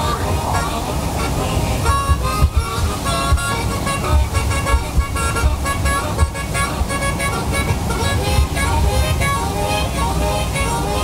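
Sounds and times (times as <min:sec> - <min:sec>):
background music with low beat: 0:01.9 - 0:08.6.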